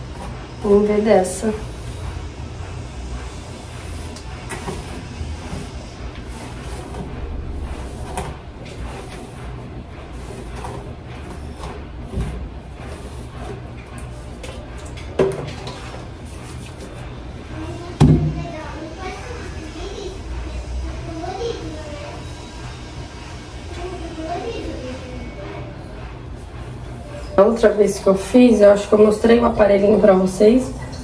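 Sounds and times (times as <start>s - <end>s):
low hum: 0.0s - 29.8s.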